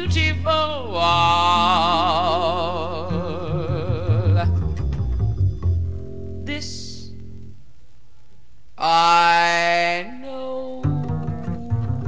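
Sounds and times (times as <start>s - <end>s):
plucked upright bass: 0.0s - 6.5s, 10.7s - 12.0s.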